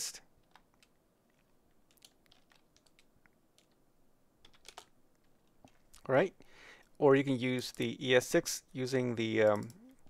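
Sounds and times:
faint keyboard keystrokes: 0.4 - 3.8, 4.4 - 6.1, 9.4 - 10.0.

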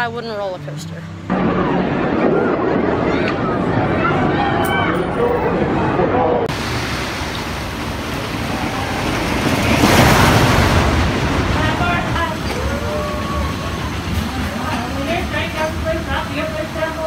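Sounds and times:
roller coaster train rushing: 1.3 - 17.0.

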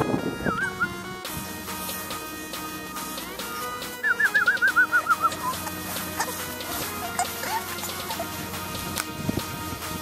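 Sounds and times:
background music: 0.0 - 10.0
bird whistling notes: 0.3 - 1.0, 3.9 - 5.6.

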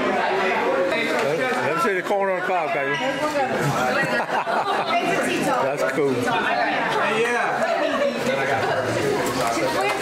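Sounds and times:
chatter of young people: 0.0 - 10.0.

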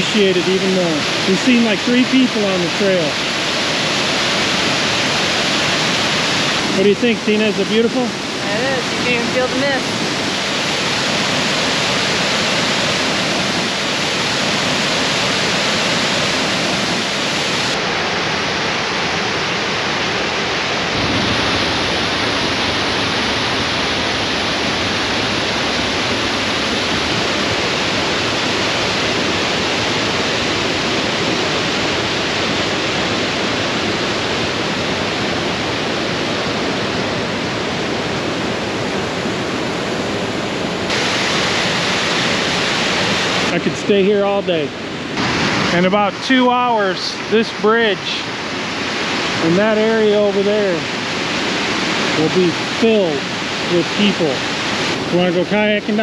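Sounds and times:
water rushing over rocks: 0.0 - 56.0.

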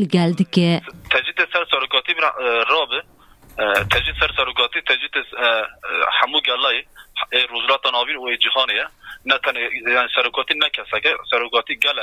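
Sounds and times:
speech over telephone: 0.0 - 3.0, 3.6 - 12.0.

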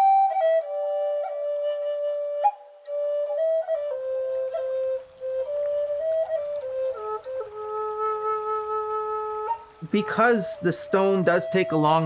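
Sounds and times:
solo flute melody: 0.0 - 12.0.

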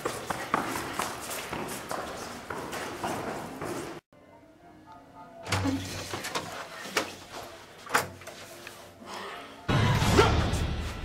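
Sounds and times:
footsteps climbing stairs: 0.0 - 4.0.

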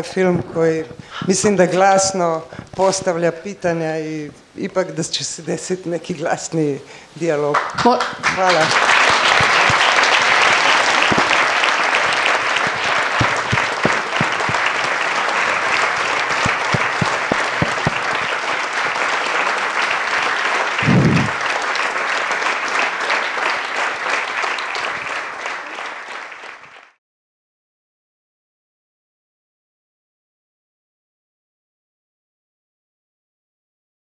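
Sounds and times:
audience applauding: 7.5 - 27.0.

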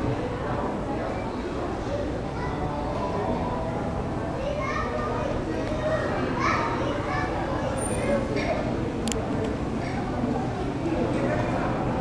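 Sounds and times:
children's voices: 1.0 - 11.7.

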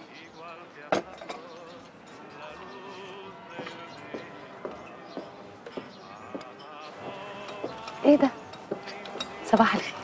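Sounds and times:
crockery clinking: 0.0 - 10.0.

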